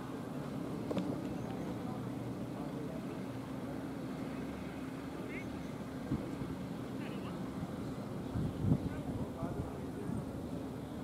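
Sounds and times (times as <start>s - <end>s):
constant low hum: 0.0s - 11.0s
faint distant voices: 0.1s - 11.0s.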